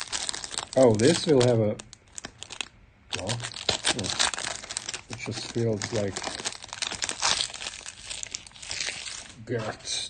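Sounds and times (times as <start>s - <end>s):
foil wrapper crinkling: 0.0s - 10.0s.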